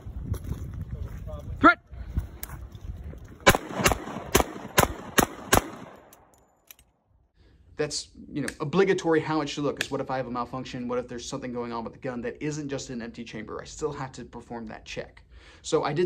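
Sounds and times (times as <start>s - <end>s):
pistol shots: 3.4s - 6.3s.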